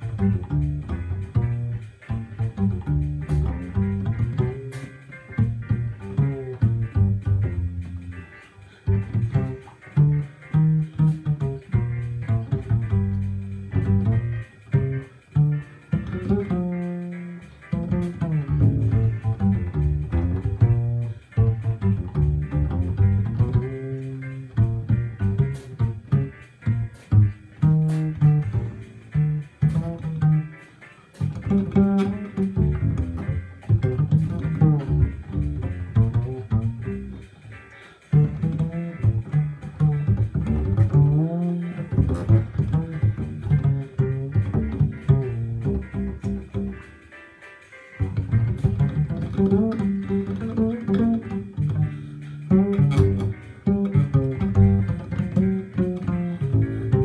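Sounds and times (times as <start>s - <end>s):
double bass plucked: 0.0s - 57.0s.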